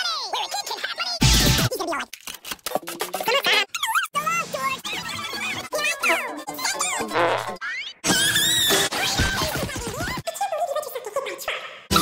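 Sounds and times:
squeaky warbling cartoon sounds: 3.1 - 9.3
cartoon music: 4.0 - 8.8.

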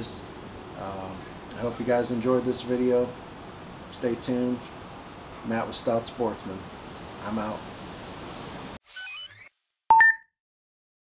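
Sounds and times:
rising digital sweeps: 8.8 - 10.2.

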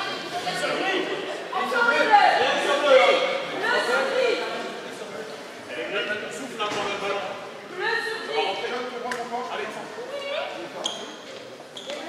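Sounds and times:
players calling in echoing hall: 0.0 - 12.0.

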